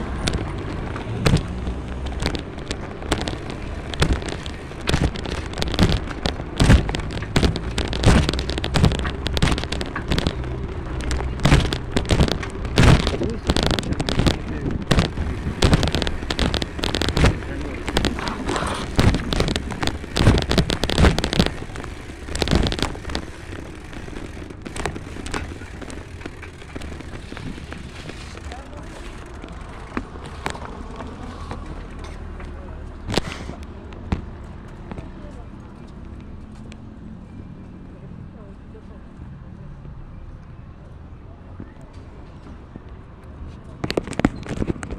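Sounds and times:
phone and bicycle rattling: 0.0s - 33.8s, 43.6s - 44.9s
steady riding rumble: 0.0s - 40.4s, 41.0s - 44.9s.

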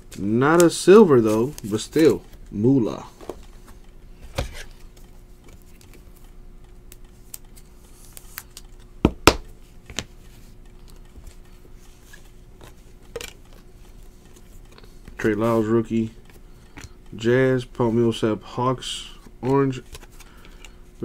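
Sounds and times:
faint steady hum: 0.0s - 21.0s
cards tapping on a table: 9.0s - 10.1s.

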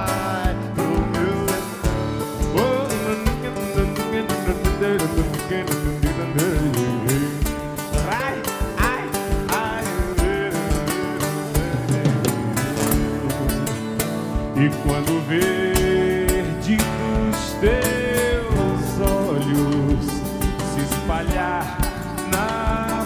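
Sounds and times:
acoustic guitar: 0.0s - 23.0s
bass guitar: 0.0s - 23.0s
drums keeping a steady beat: 0.0s - 23.0s.

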